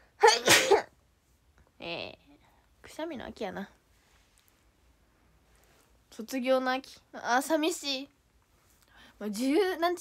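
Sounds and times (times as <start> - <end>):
woman speaking: 1.8 - 3.8, 9.2 - 10.0.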